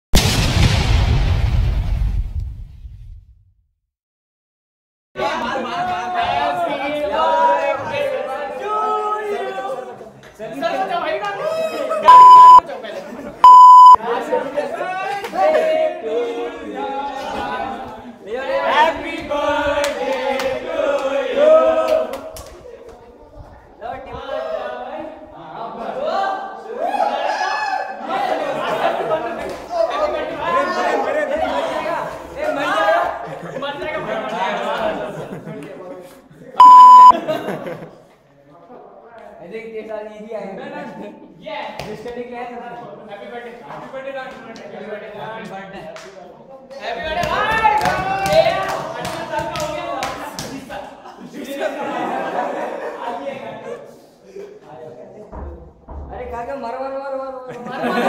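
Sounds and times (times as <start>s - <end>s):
group of voices: 5.2s - 38.1s
young men chattering and shouting: 5.2s - 58.0s
electronic censor beeps: 12.1s - 12.6s, 13.4s - 14.0s, 36.6s - 37.2s.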